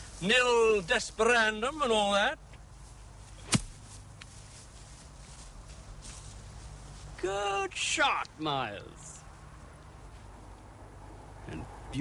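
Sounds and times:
golf club striking ball: 3.4s - 3.8s.

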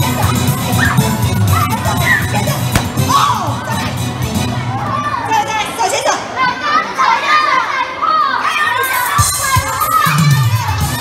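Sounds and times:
low thuds: 2.7s - 3.4s.

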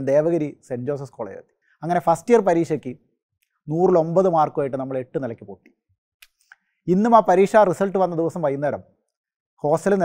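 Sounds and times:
man speaking: 0.0s - 3.0s, 3.6s - 5.7s, 9.6s - 10.0s.

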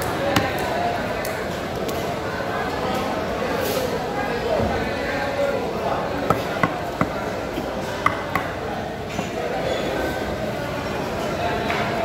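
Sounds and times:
knocks on wooden chopping block: 6.3s - 7.2s, 8.0s - 8.6s.

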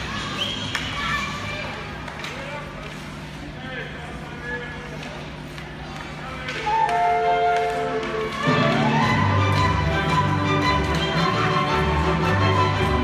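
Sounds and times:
voices echoing in a hall: 0.0s - 10.9s
music over public-address system: 6.8s - 13.0s.

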